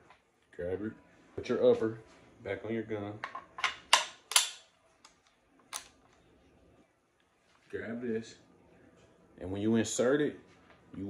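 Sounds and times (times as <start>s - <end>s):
metal-on-metal clicks and clacks: 3.9s - 4.6s.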